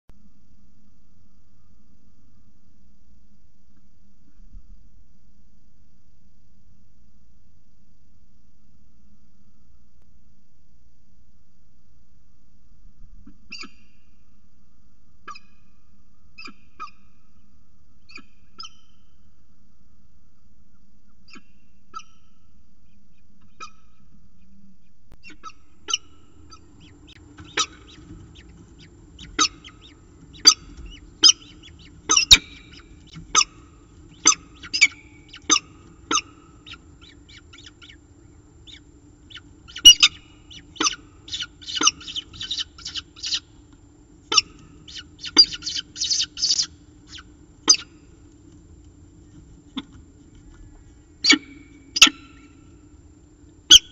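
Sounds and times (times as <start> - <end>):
low hum: 0.1 - 53.9
falcon calls: 25.2 - 43.5, 44.3 - 48.0, 50.7 - 52.5.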